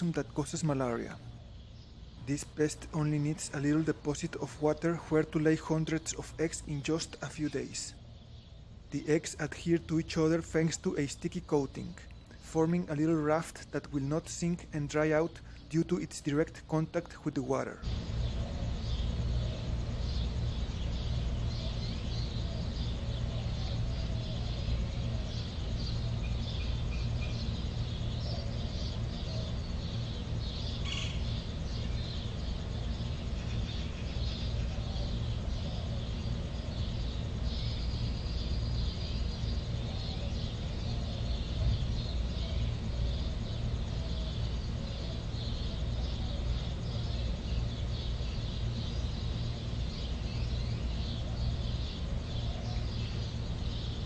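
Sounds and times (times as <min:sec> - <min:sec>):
steady low rumble: 0:00.0 - 0:54.0.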